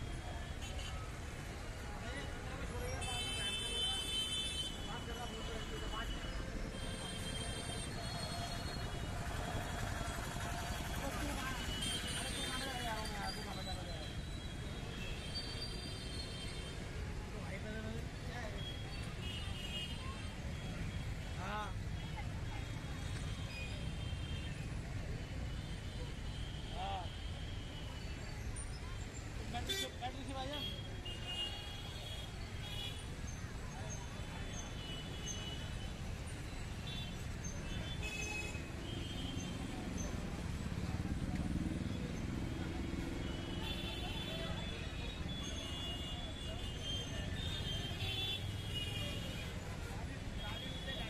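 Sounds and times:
traffic rumble: 0:17.1 - 0:51.0
crowd chatter: 0:17.2 - 0:51.0.

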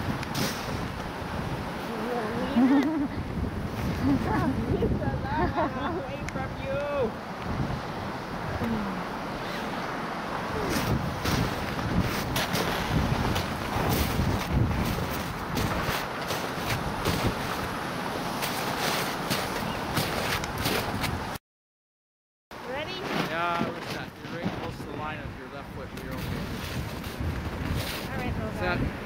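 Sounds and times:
wind buffeting microphone: 0:00.0 - 0:21.4, 0:22.7 - 0:29.0.

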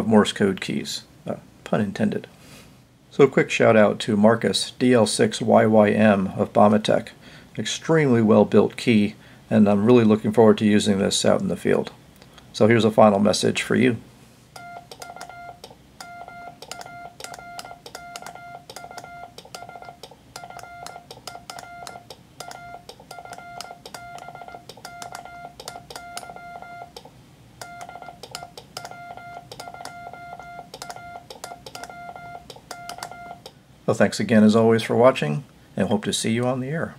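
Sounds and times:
morse code beeps: 0:14.6 - 0:27.0, 0:27.6 - 0:33.4.

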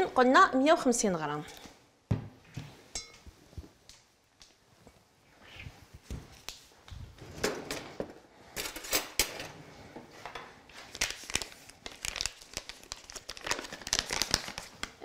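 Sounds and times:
paper bag crinkling: 0:10.8 - 0:15.0.

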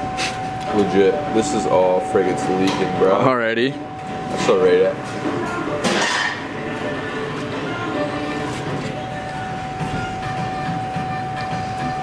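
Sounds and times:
constant high whine: 0:00.0 - 0:12.0
room noise: 0:00.0 - 0:12.0.

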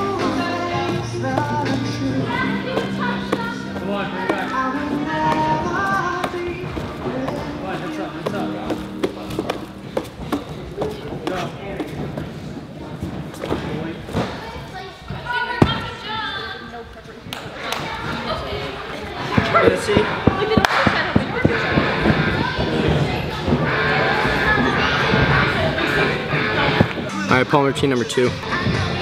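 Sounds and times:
background music: 0:00.0 - 0:11.4, 0:20.9 - 0:29.0
voices: 0:00.0 - 0:12.5, 0:13.4 - 0:29.0.

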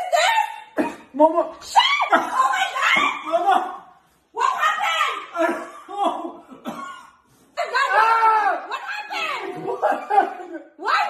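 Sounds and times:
woman coughing and sputtering: 0:00.8 - 0:01.2, 0:05.4 - 0:07.3.

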